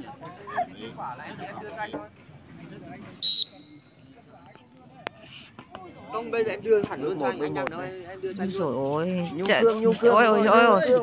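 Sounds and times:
onlookers murmuring: 0:00.0 - 0:11.0
referee's whistle blast: 0:03.2 - 0:03.8.

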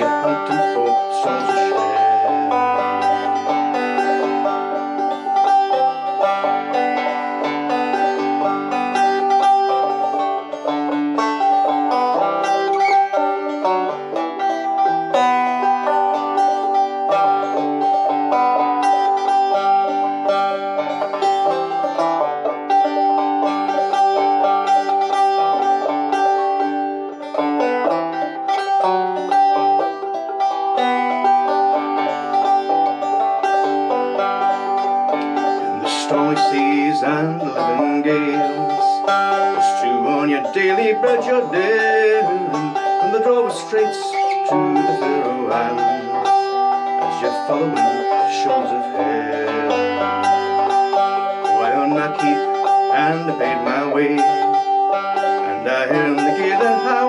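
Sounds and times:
banjo-mandolin played with pick: 0:00.0 - 0:57.0.

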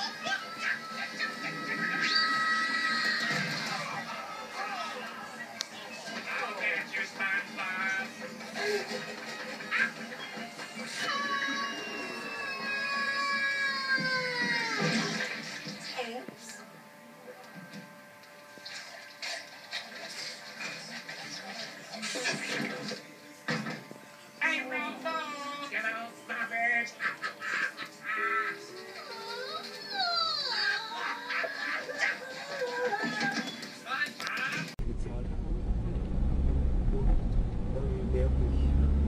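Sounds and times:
cartoon music from television: 0:00.0 - 0:34.8.

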